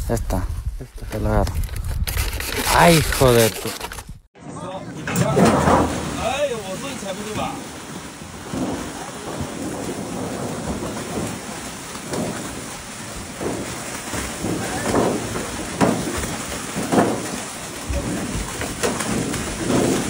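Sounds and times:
water rushing and splashing: 4.6 - 20.0.

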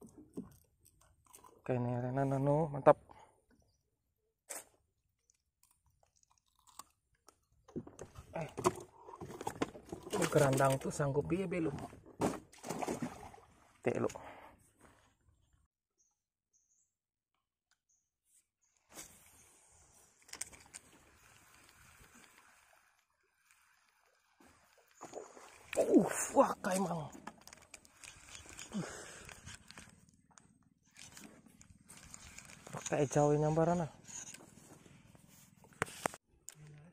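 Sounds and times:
handling rustle: 26.6 - 33.2.

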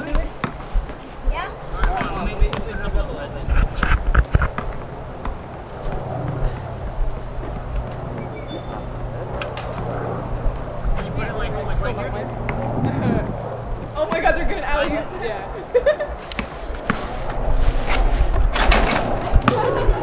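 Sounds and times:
basketball bouncing on pavement: 0.0 - 1.1, 1.8 - 3.1, 4.0 - 9.1, 19.2 - 20.0
steady low hum: 0.0 - 20.0.

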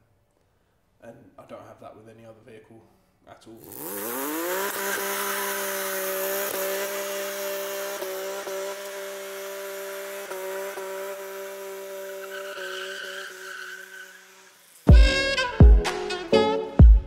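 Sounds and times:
spinning tyres hissing: 3.6 - 15.5
car engine revving high: 3.6 - 16.3.

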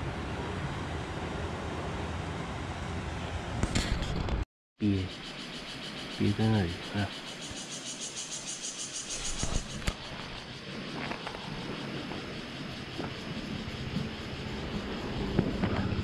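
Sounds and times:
outdoor background noise: 0.0 - 16.0.

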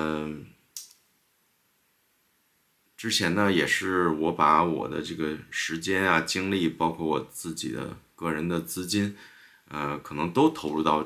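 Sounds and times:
man saying uh: 0.0 - 0.6, 3.0 - 11.0.

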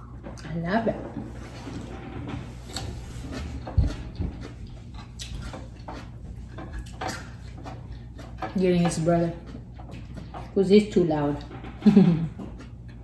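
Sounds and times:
low room hum: 0.0 - 13.0.

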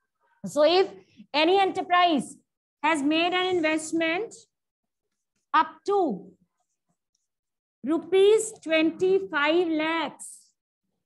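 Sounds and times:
woman speaking: 0.4 - 4.5, 7.8 - 10.6.

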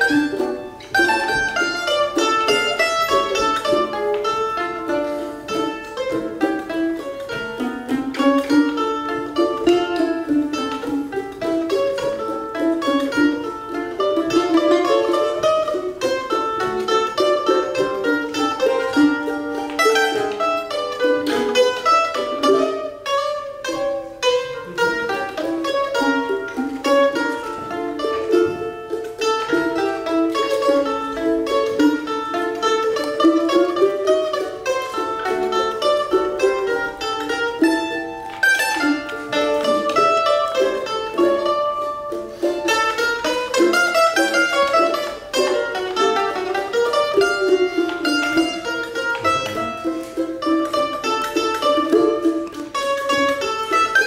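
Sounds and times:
mandolins playing: 0.0 - 54.0.

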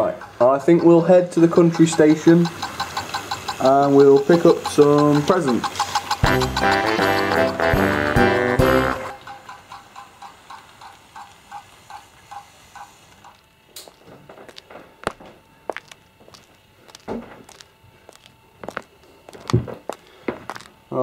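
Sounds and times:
model train clicking on track: 0.0 - 13.4
sharp clicks and knocks: 1.4 - 15.3.

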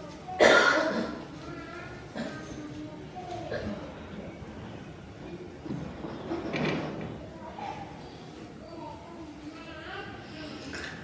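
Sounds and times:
person coughing: 0.4 - 1.2.

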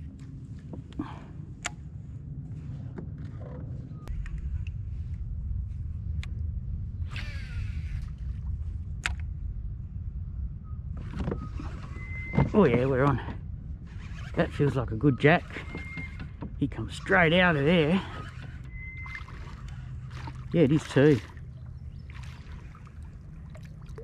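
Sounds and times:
low steady rumble: 0.0 - 24.0.

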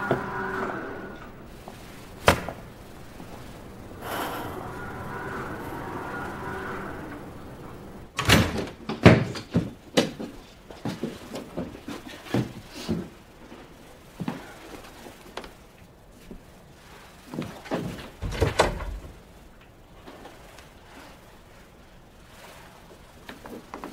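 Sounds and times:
door closing: 2.2 - 9.5.

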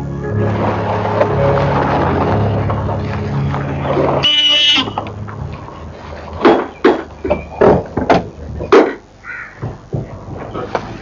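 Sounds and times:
low steady hum: 0.0 - 11.0
car horn beep: 4.2 - 5.1.

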